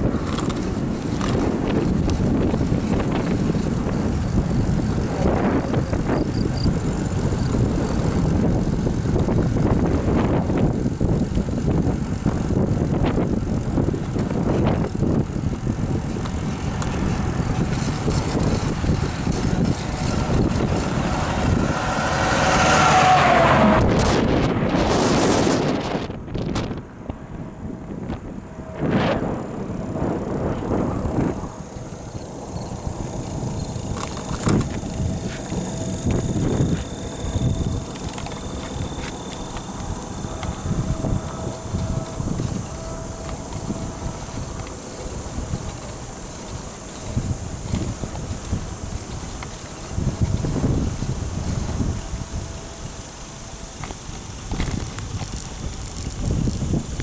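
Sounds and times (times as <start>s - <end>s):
wind rushing over microphone: 0.0s - 57.0s
vehicle passing by: 14.2s - 53.7s.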